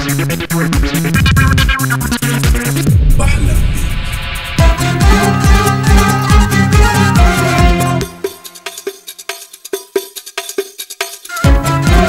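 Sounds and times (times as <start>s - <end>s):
sharp hand percussion strikes: 7.6s - 12.0s.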